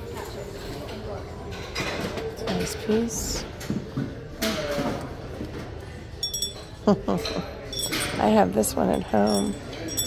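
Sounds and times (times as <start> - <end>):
glass bell clinking: 6.2 - 10.0.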